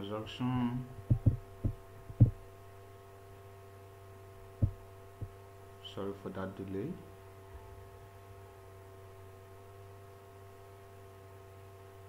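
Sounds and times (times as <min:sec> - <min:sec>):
low electrical hum: 0:00.0 - 0:12.0
dull thumps: 0:01.0 - 0:02.4, 0:04.6 - 0:05.4.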